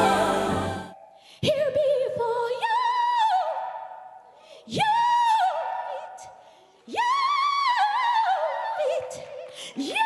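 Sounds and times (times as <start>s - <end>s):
woman singing gospel: 0.0s - 3.5s.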